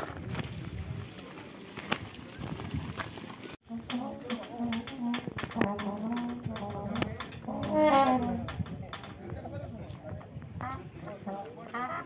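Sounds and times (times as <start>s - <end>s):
people's voices: 3.7s - 12.0s
brass band notes: 7.5s - 8.4s.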